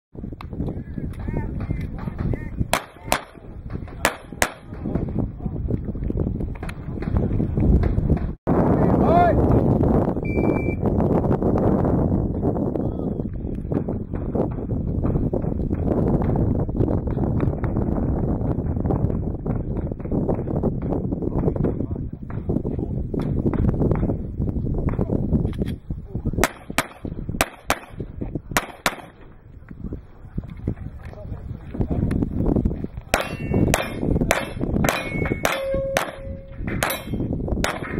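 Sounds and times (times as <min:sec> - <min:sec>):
wind rumble on microphone: 0:00.1 - 0:37.9
shot timer start beep: 0:10.2 - 0:10.8.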